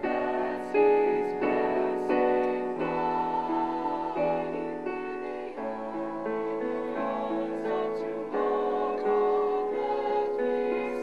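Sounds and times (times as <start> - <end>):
choir singing: 0.0 - 11.0
piano accompaniment: 0.0 - 11.0.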